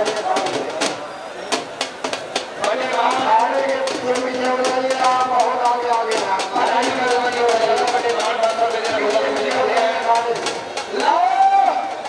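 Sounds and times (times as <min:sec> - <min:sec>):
drum beats: 0:00.0 - 0:12.0
man calling: 0:02.6 - 0:12.0.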